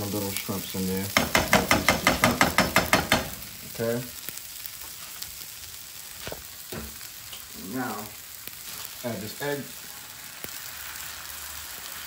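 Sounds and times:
fried rice sizzling in skillet: 0:00.0 - 0:12.0.

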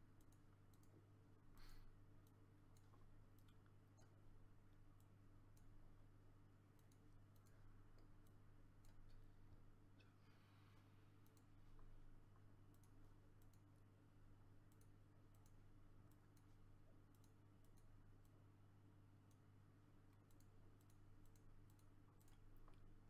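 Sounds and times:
faint computer mouse clicks: 0:00.2 - 0:01.0, 0:06.7 - 0:09.2, 0:11.2 - 0:13.7, 0:14.6 - 0:18.4, 0:20.1 - 0:22.9.

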